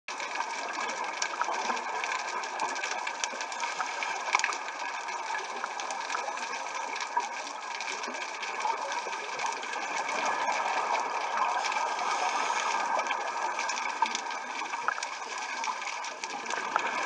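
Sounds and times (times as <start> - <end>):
sharp clicks and crackles: 0.1 - 17.0
underwater hiss: 9.9 - 13.8.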